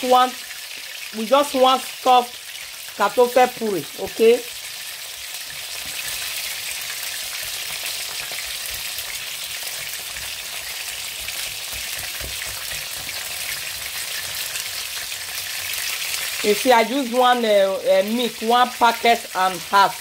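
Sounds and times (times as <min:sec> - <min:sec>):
sizzling hiss from hob: 0:00.0 - 0:20.0.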